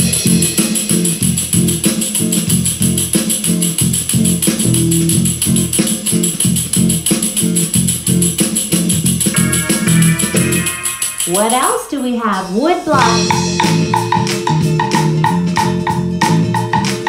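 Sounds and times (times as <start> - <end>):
recorded backing music: 0.0 - 17.0
tambourine shaken: 0.0 - 17.0.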